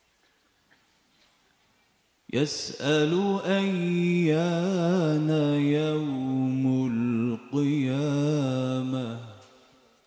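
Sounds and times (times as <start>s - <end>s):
man reciting melodically: 2.3s - 10.0s.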